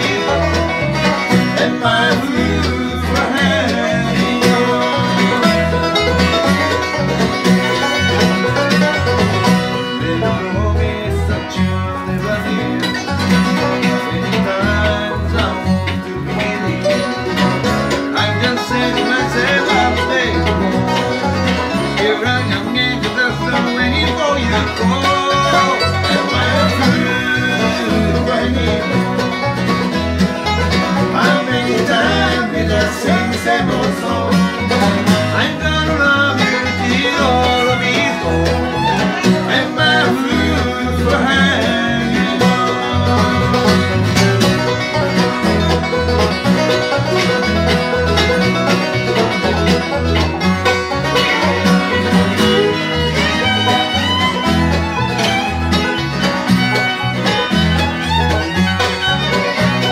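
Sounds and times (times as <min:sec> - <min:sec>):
bluegrass band playing: 0:00.0 - 0:59.9.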